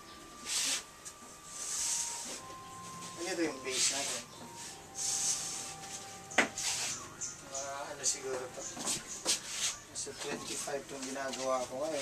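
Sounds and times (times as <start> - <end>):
faint background music: 0.0 - 12.0
cloth rustling hiss: 0.4 - 7.2.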